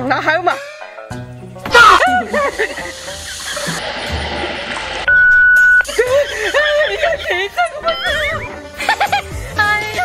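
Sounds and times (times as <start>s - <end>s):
background music: 0.0s - 10.0s
steady beep tone: 5.1s - 5.9s, 7.9s - 8.5s
man laughing: 5.9s - 9.3s.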